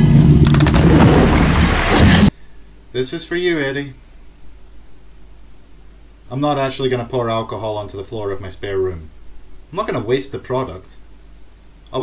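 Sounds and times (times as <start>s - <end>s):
deep rumbling roar: 0.0s - 2.3s.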